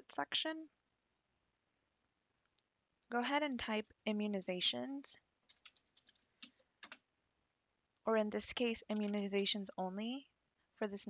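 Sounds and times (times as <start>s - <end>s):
faint keyboard keystrokes: 5.5s - 7.0s, 8.8s - 9.4s.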